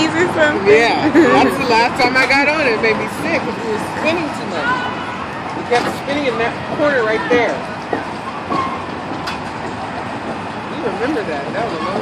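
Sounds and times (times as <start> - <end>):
amusement ride rumble and rattle: 0.0 - 12.0.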